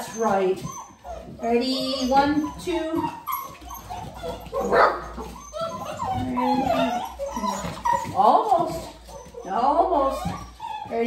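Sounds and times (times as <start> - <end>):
puppies whining and yipping: 0.0 - 11.0
puppy barking: 3.4 - 8.1.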